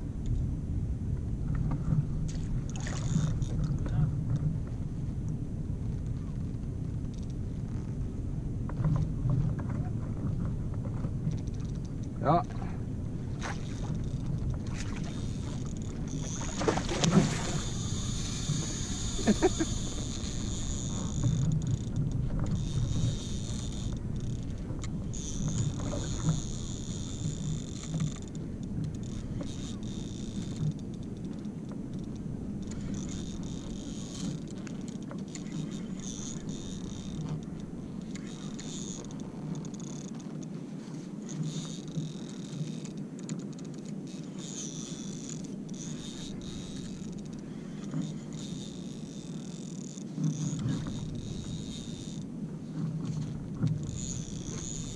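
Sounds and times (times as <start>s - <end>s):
water around kayak: 0.0s - 54.9s
wind: 0.0s - 54.9s
person laughing: 19.1s - 20.0s.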